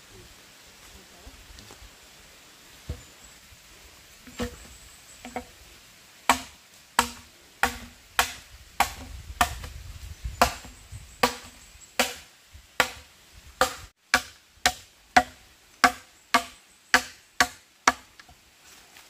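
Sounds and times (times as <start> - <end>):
machete chopping bamboo: 4.3 - 4.6, 5.2 - 5.5, 6.3 - 9.7, 10.4 - 18.4.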